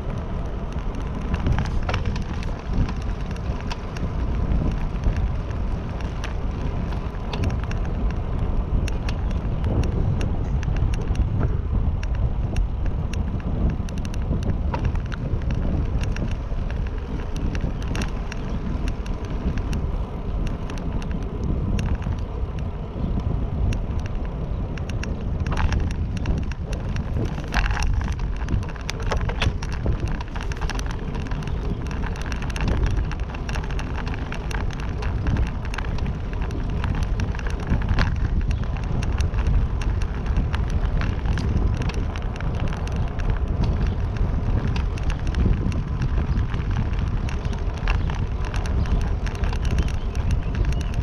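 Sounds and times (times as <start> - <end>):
bicycle tyre noise on pavement: 0.0 - 51.0
small clicks and knocks: 0.0 - 51.0
wind rumbling on microphone: 0.0 - 51.0.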